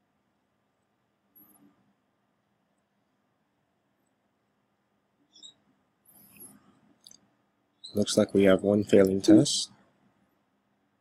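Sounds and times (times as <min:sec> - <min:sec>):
faint high-pitched chirp: 0:05.2 - 0:06.7, 0:07.7 - 0:08.4.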